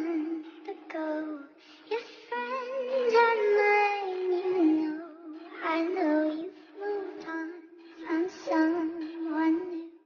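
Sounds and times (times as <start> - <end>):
high-pitched singing: 0.0 - 10.0.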